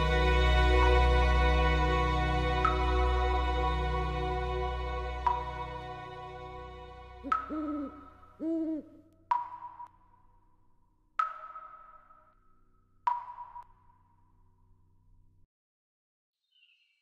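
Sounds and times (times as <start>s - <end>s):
soft music: 0.0s - 9.0s
owl hooting: 7.2s - 9.0s.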